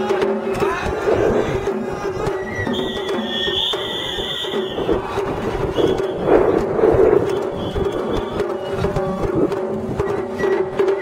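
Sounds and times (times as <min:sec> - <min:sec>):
loud noisy surge: 0:00.5 - 0:10.1.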